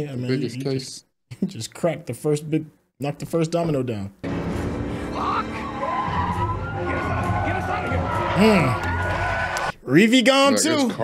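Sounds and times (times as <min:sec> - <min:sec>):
dramatic music score: 0:04.2 - 0:09.7
police siren wailing: 0:05.2 - 0:09.7.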